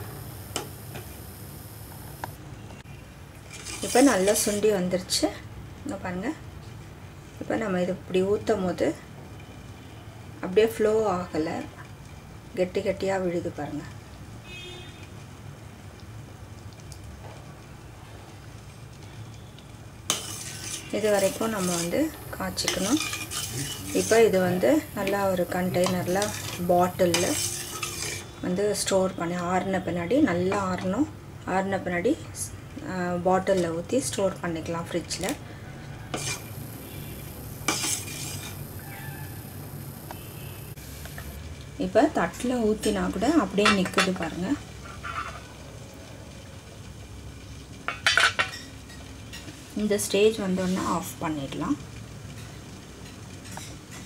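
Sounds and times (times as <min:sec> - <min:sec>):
metal ladle scraping steel pot: 0:03.5 - 0:04.6, 0:20.1 - 0:28.3, 0:36.1 - 0:39.1.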